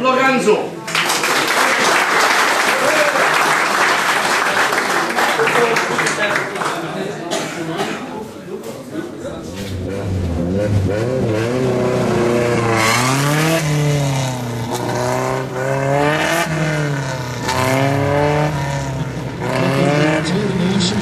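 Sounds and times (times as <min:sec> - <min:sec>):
race car engine revving: 0:09.4 - 0:21.0.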